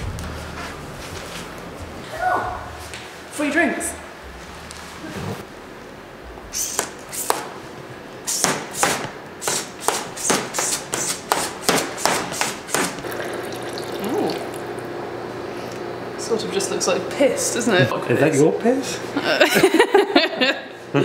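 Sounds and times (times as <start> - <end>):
low machine hum: 0.0 - 8.2, 13.0 - 21.0
hot liquid pouring into cup: 13.0 - 15.0.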